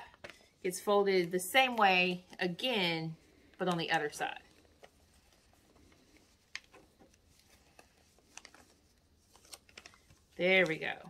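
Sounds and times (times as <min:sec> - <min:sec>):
paper being folded and creased: 0:03.4 - 0:11.0.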